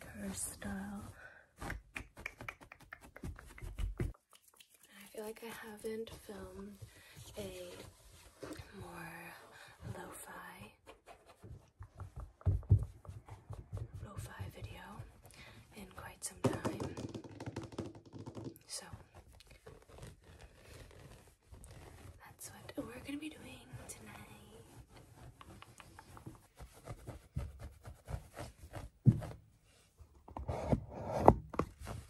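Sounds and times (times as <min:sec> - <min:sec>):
soft mouth sounds: 0:01.6 - 0:04.9
light knocks and thuds: 0:11.8 - 0:14.8
person whispering: 0:15.7 - 0:16.9, 0:22.2 - 0:24.6
cloth rustling: 0:19.0 - 0:29.9.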